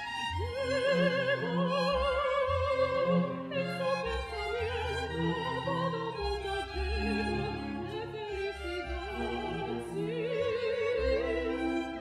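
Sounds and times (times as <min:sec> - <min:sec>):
soprano singing with vibrato: 0:00.0 - 0:12.0
string orchestra holding notes: 0:00.0 - 0:12.0.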